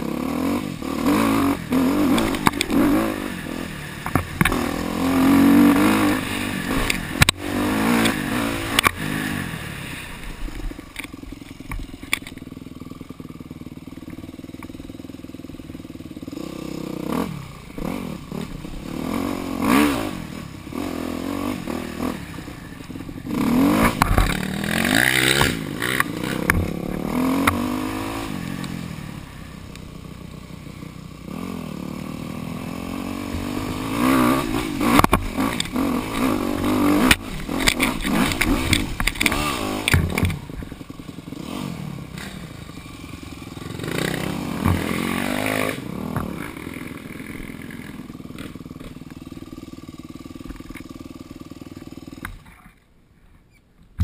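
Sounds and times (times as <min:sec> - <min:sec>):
dirt bike engine revving: 0:00.0 - 0:52.4.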